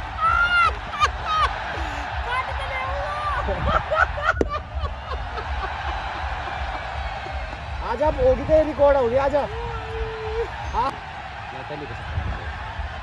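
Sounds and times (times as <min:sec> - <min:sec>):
players shouting and cheering: 0:00.0 - 0:13.0.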